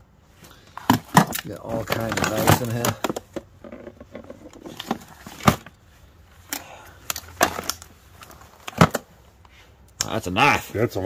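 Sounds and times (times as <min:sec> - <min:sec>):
hands rummaging through plastic tote: 0:00.4 - 0:05.8, 0:06.4 - 0:09.1
objects knocking and clattering: 0:00.7 - 0:05.8, 0:07.1 - 0:09.1.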